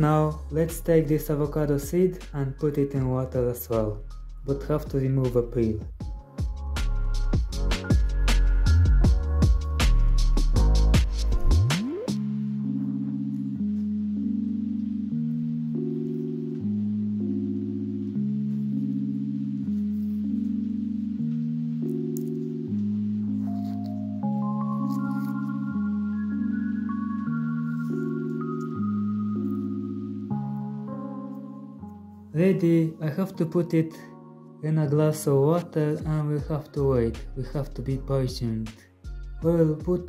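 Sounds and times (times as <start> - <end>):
soft sustained music chords: 6.1 - 39.4
single-note melody: 11.8 - 35.0.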